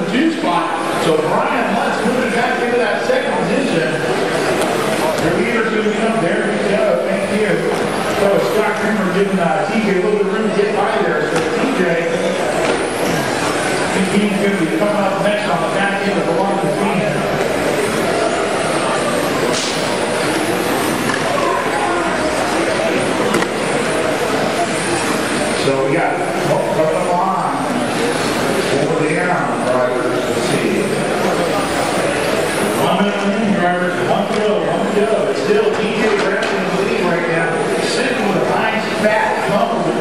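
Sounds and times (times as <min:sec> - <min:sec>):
man talking: 0:00.0 - 0:04.2, 0:05.0 - 0:12.4, 0:13.9 - 0:17.4, 0:25.6 - 0:27.8, 0:28.6 - 0:31.4, 0:32.8 - 0:40.0.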